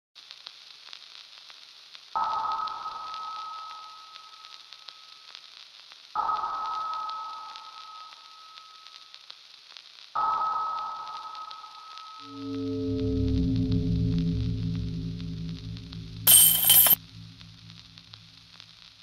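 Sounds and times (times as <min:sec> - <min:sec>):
crackling static hiss: 0:00.2 - 0:12.3, 0:17.0 - 0:19.0
ringing hit: 0:16.3 - 0:17.0.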